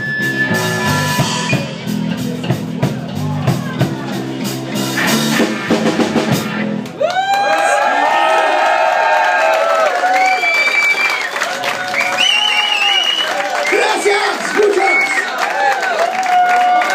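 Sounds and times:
live rock band playing: 0.0s - 7.0s
audience cheering and whistling: 7.0s - 16.9s.

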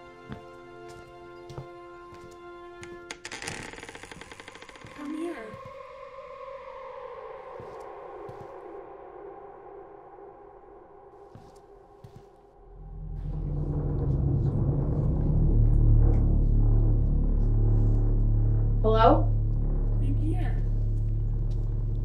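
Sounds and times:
deep rumble: 12.6s - 22.0s.

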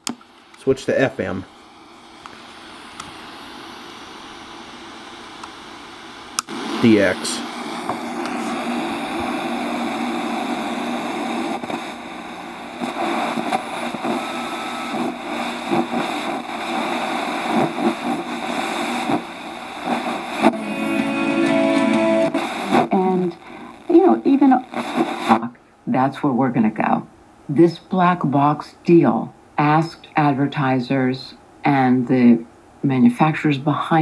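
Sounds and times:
radio static hiss: 0.0s - 34.0s
radio broadcast speech: 0.6s - 1.4s, 6.5s - 12.0s, 12.7s - 20.5s, 22.3s - 27.0s
radio music: 6.4s - 25.5s.

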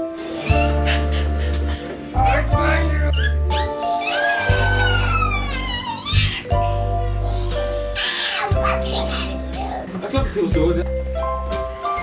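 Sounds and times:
song with high voice and bass: 0.1s - 9.6s.

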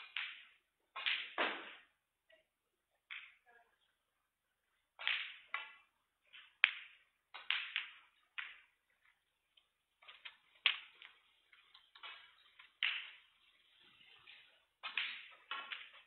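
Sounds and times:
snooker balls clicking: 0.0s - 2.0s, 3.0s - 3.4s, 5.0s - 16.0s.

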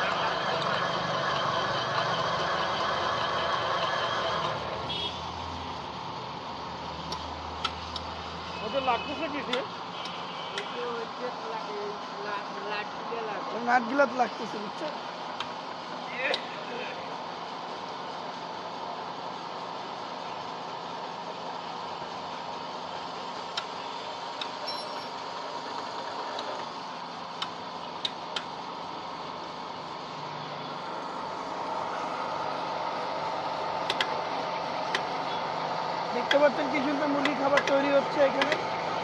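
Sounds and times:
sharp clicks: 27.4s - 28.5s, 33.8s - 34.2s, 37.2s - 38.6s
pellet mill running: 30.9s - 39.0s.

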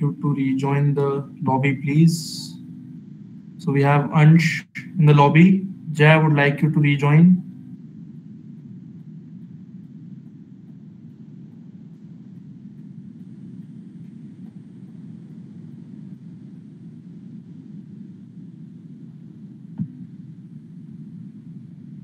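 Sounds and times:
steady low rumbling noise: 0.0s - 22.0s.

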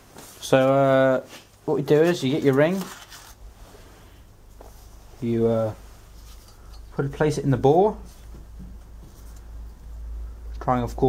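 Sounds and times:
paper wrapping rustling: 0.1s - 3.4s.

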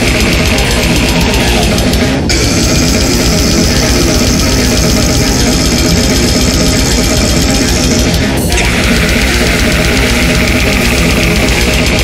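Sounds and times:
heavily distorted guitars: 0.0s - 12.0s
rapid drumming: 0.0s - 12.0s.

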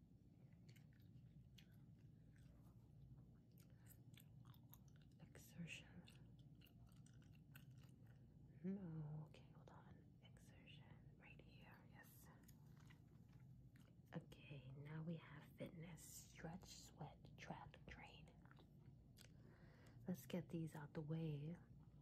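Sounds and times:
gum chewing mouth clicks: 0.5s - 2.7s, 3.5s - 8.3s, 18.4s - 19.4s.

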